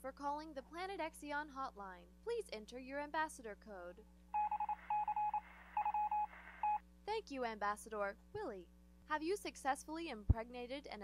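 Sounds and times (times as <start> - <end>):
automated phone prompt: 4.4 - 6.8
telephone keypad beeps: 4.4 - 6.8.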